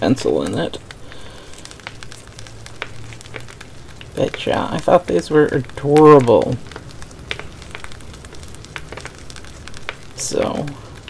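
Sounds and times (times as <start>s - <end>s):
low steady hum: 0.0s - 11.0s
paper stickers rustling: 0.0s - 11.0s.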